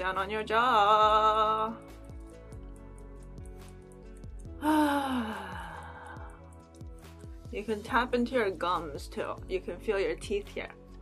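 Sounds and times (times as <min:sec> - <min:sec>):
soft music with steady beat: 0:00.0 - 0:11.0
person sighing exhale: 0:04.6 - 0:06.4.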